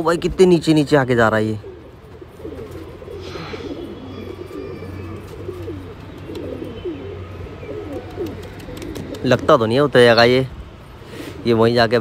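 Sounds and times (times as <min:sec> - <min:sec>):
pigeons cooing: 0:00.0 - 0:11.6.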